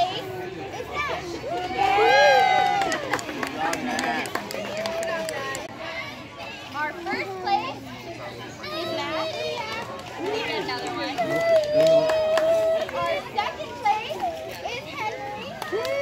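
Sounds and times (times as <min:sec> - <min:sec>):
young children talking: 0:00.0 - 0:16.0.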